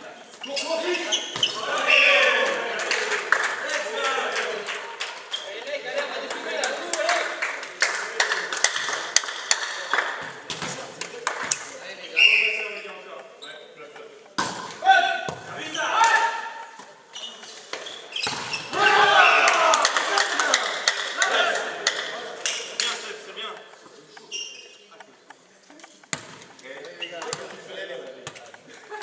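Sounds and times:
shoes squeaking on court floor: 0.0 - 2.4, 5.2 - 5.9, 11.9 - 14.6, 16.6 - 19.4, 22.6 - 28.7
players shouting: 0.4 - 4.9, 14.8 - 16.7, 18.6 - 22.2
volleyball being hit: 14.4 - 15.6, 18.2 - 19.0, 26.1 - 26.5.

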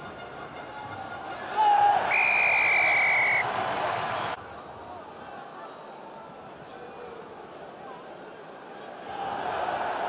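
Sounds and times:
crowd cheering: 1.3 - 4.4, 9.0 - 10.0
referee's whistle long blast: 2.1 - 3.4.

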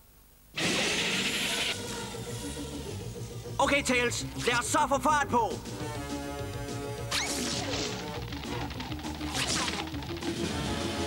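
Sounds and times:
background music: 0.6 - 11.0.

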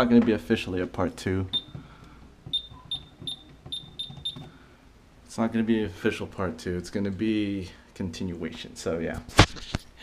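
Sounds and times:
high-pitched electronic beeps: 1.5 - 1.8, 2.5 - 4.5.

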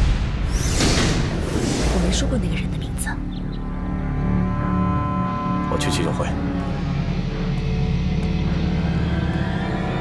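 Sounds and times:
low musical drone: 1.6 - 10.0.

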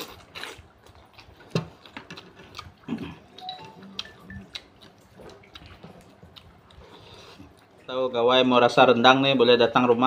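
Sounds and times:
man chewing wetly: 0.0 - 8.0.

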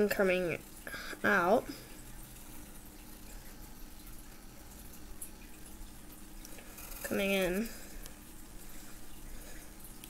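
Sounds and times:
low steady hum: 0.0 - 10.0
small ticks: 2.0 - 8.2.

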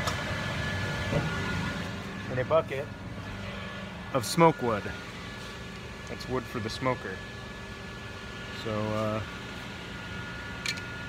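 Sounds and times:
workshop machinery whirring hum: 0.0 - 11.0.

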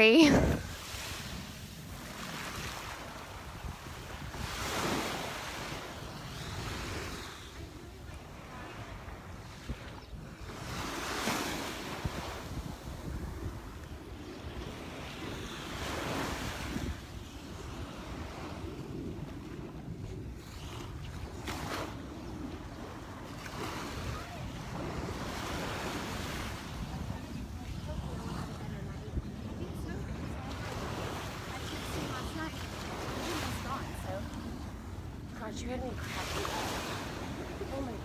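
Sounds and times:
waves washing on sand: 0.0 - 38.0
wind rumbling on microphone: 0.0 - 38.0.

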